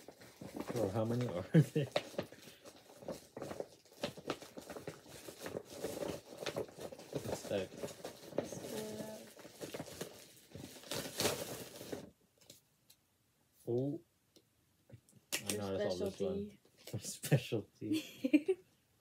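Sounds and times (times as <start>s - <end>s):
paper bag rustling: 0.0s - 12.1s.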